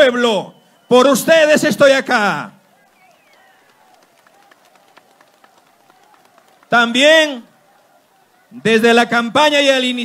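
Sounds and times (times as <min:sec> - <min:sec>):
open-air crowd noise: 0:00.0 - 0:10.0
scattered light claps: 0:02.9 - 0:06.8.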